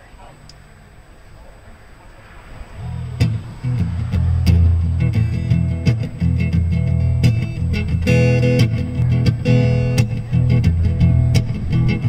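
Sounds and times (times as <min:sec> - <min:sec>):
faint background noise: 0:00.0 - 0:12.0
low guitar notes: 0:02.7 - 0:12.0.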